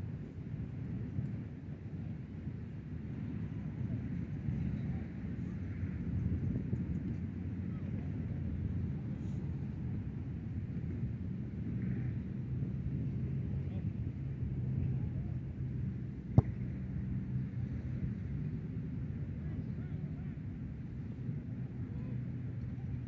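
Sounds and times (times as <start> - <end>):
steady low rumble: 0.0 - 23.0.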